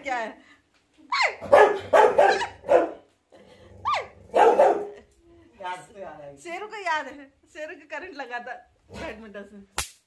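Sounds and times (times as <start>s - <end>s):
dog yelping: 1.1s - 3.0s, 3.8s - 5.0s
dog barking: 1.4s - 3.1s, 3.9s - 5.0s.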